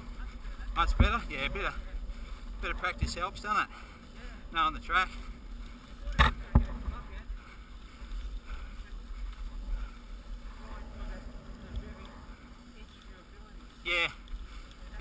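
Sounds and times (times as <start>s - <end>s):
bike tyres rumbling on gravel: 0.0s - 15.0s.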